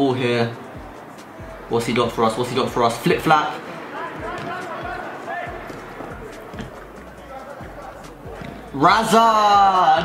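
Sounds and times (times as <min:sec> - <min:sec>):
players calling out: 0:00.0 - 0:10.0
footsteps: 0:00.6 - 0:09.1
ball touches: 0:04.1 - 0:08.8.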